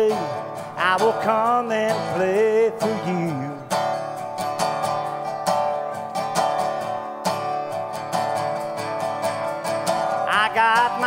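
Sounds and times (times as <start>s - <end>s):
resonator guitar strumming: 0.0s - 11.0s.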